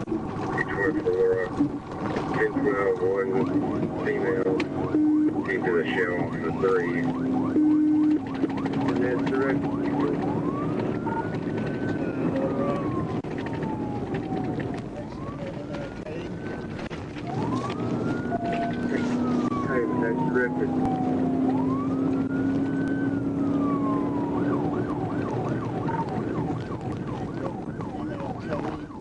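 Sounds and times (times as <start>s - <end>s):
car engine: 0.0s - 29.0s
police siren wailing and yelping: 0.0s - 29.0s
road noise: 0.0s - 29.0s.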